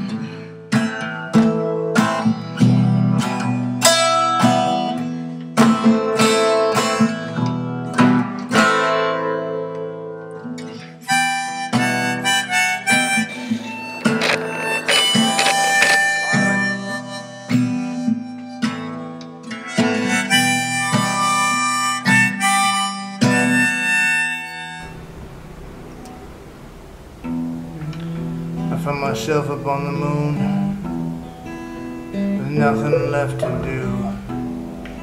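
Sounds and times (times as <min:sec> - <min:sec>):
strummed acoustic guitar: 0:00.0 - 0:35.0
harmonica melody: 0:11.0 - 0:25.0.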